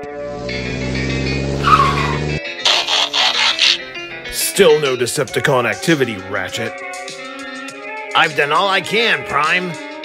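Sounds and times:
car engine running: 0:00.0 - 0:03.8
tyre squeal: 0:01.5 - 0:03.8.

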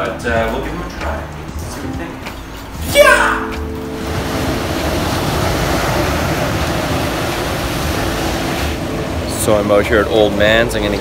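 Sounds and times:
waves breaking on a beach: 0:03.9 - 0:09.7.

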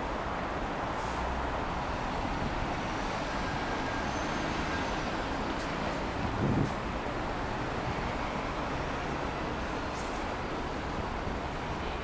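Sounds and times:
city traffic rumble: 0:00.0 - 0:12.0.

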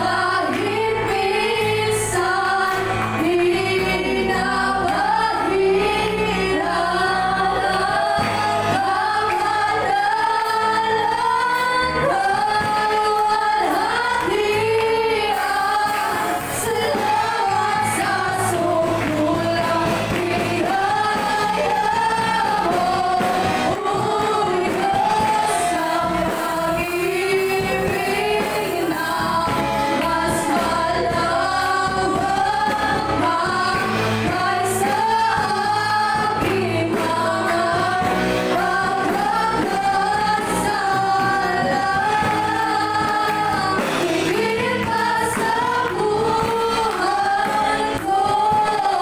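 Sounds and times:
live band with guitar and keyboard: 0:00.0 - 0:49.0
women singing: 0:00.0 - 0:49.0.

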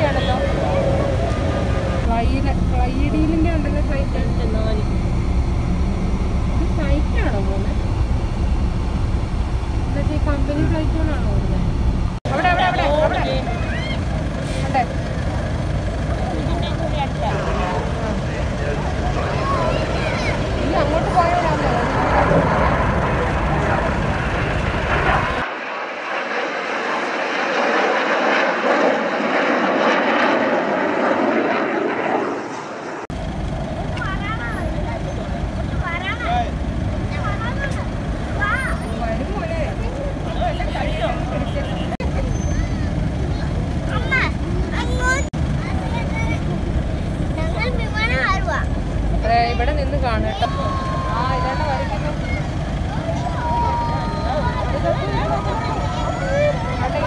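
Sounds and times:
spectators' voices: 0:00.0 - 0:08.6, 0:09.8 - 0:25.7, 0:33.9 - 0:57.0
jet aircraft flying over: 0:00.0 - 0:57.0.

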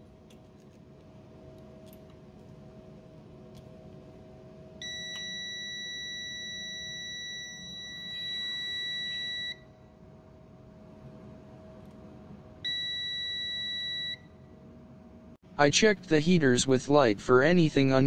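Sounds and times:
multimeter continuity beep: 0:04.8 - 0:09.7, 0:12.6 - 0:14.3.

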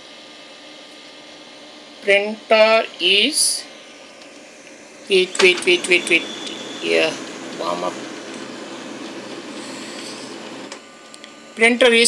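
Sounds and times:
printer mechanical running noise: 0:03.8 - 0:12.0
printer click: 0:05.3 - 0:06.6.

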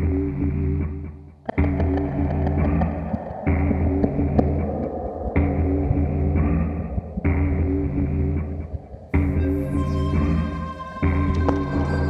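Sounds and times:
synthesizer bass drone: 0:00.0 - 0:12.0
synthesizer chord: 0:09.2 - 0:12.0.

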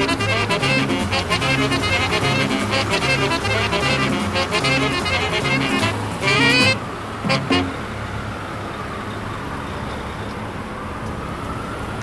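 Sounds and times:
brass band music: 0:00.0 - 0:07.8
street traffic hum: 0:00.0 - 0:12.0.

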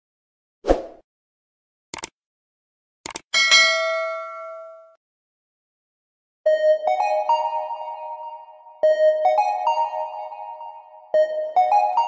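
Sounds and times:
bright bell ding: 0:03.4 - 0:05.0.

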